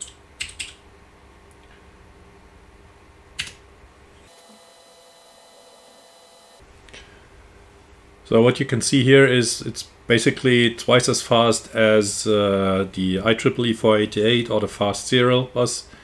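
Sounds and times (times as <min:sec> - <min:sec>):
computer keyboard clicks: 0:00.0 - 0:00.8
faint steady hum: 0:00.0 - 0:16.0.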